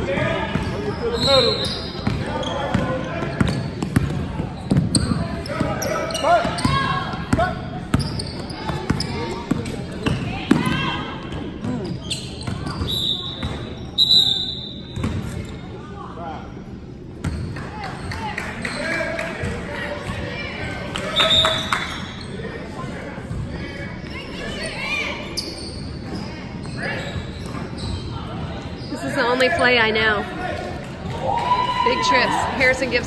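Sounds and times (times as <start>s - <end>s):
referee's whistle: 12.2s - 14.9s, 21.1s - 22.1s
spectators talking and calling out: 22.0s - 33.0s.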